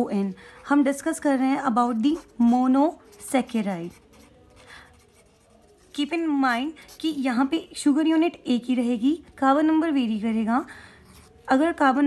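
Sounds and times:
pen scratching on paper: 0.4s - 7.8s, 11.0s - 11.8s.

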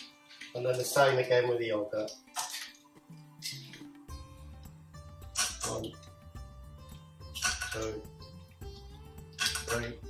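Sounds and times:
quiet background music: 0.0s - 10.0s
plastic pot and spoon clattering: 7.4s - 8.0s, 9.4s - 10.0s.

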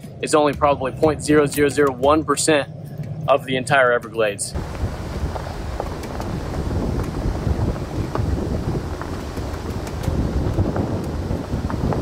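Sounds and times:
tyres rumbling on gravel: 4.5s - 12.0s
wind buffeting microphone: 4.6s - 12.0s.

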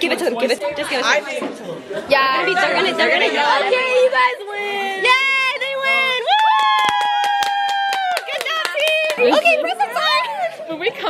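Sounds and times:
quick hand clapping: 6.4s - 9.6s.

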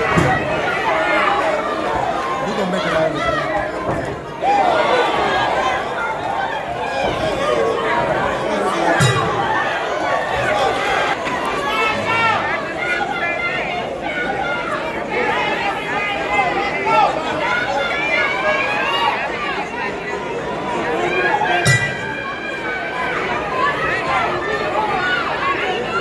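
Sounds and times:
spectators chattering: 0.0s - 26.0s.

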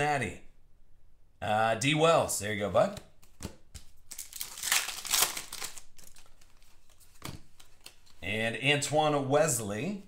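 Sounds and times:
wrapper tearing and crinkling: 4.1s - 6.6s.

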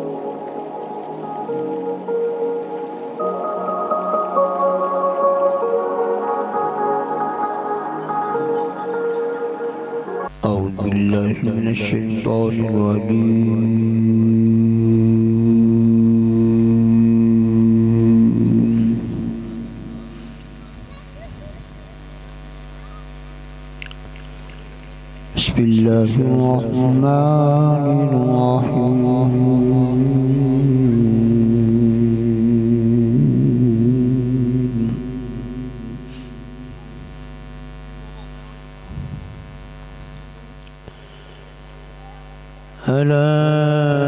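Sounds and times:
electrical mains hum: 0.0s - 44.0s
man chanting through loudspeaker: 10.3s - 20.1s, 25.4s - 36.0s, 42.8s - 44.0s
man reciting a long low note: 10.3s - 20.7s, 25.3s - 37.2s, 42.7s - 44.0s.

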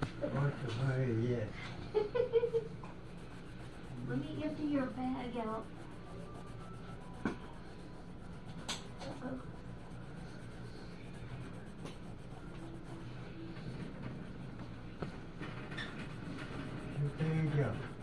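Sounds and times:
steady low hum: 0.0s - 18.0s
pencil scratching on paper: 2.5s - 18.0s.

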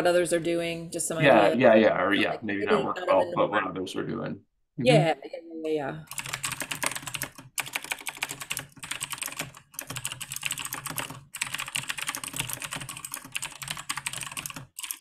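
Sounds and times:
computer keyboard typing: 6.0s - 15.0s.

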